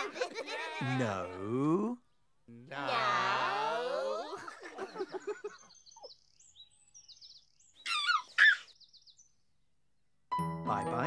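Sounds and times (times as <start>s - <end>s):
bird chirping: 4.7s - 11.0s
falling high-pitched bird call: 7.8s - 8.8s.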